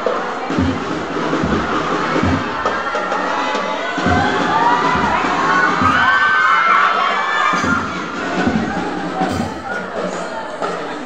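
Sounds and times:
low drum thuds: 0.0 - 10.2
children cheering and shouting: 0.0 - 11.0.

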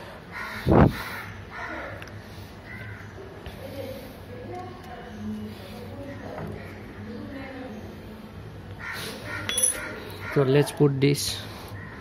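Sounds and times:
crow cawing: 0.3 - 1.9, 2.7 - 3.1, 8.8 - 10.6.

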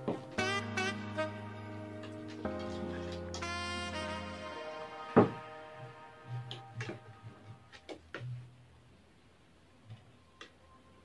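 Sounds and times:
soft background music: 0.0 - 8.5.

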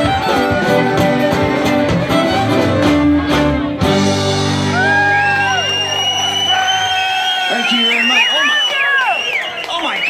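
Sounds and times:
country-rock band final notes: 0.0 - 6.0
crowd whooping and cheering: 4.4 - 10.0.

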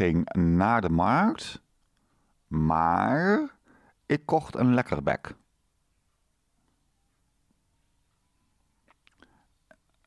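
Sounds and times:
soft breath: 2.0 - 2.4, 3.6 - 4.0, 9.1 - 9.7.

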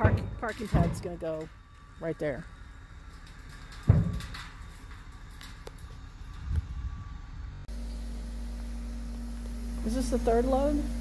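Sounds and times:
heavy bang of gravel dumping: 0.0 - 1.9, 2.9 - 6.4
steady low hum: 0.0 - 11.0
smaller thud: 3.9 - 4.3.

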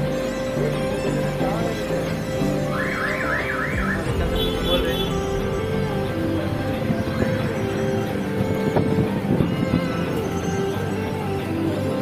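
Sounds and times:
background music: 0.0 - 12.0
electronic warbling alarm: 2.8 - 5.1.

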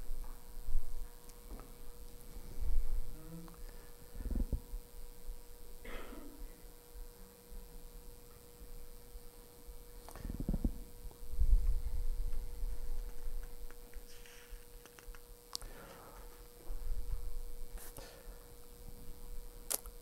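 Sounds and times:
faint hum: 0.0 - 20.0.

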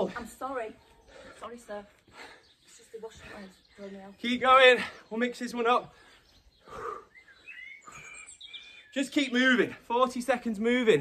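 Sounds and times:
birds chirping faintly: 0.0 - 11.0.

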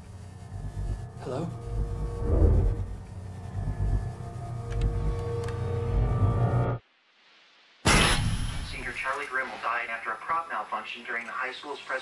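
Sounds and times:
low ominous rumbling drone: 0.0 - 6.8.

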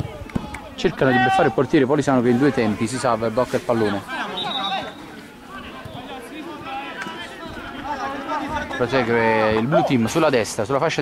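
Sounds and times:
players shouting and chattering: 0.0 - 11.0.

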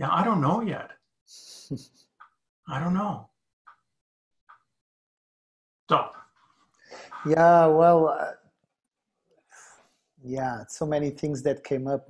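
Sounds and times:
man speaking: 0.0 - 1.7, 2.7 - 3.2, 7.0 - 8.4, 10.3 - 12.0.

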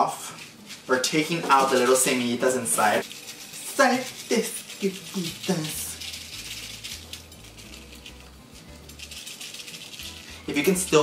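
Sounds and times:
dried chile pod crackling: 0.4 - 11.0
seeds rattling inside pod: 0.5 - 11.0
soft music with stepping bass: 5.2 - 11.0.

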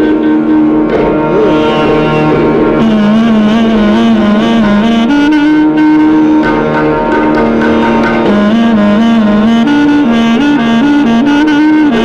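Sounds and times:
clarinet playing held note: 0.0 - 6.6
harmonium accompaniment: 0.0 - 12.0.

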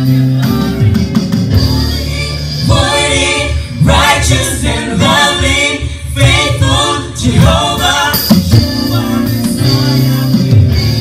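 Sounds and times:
man singing gospel through pa: 7.2 - 11.0.

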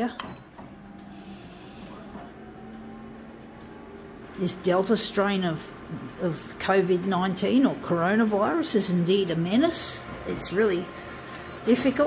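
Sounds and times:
copier mechanical hum: 0.0 - 12.0.

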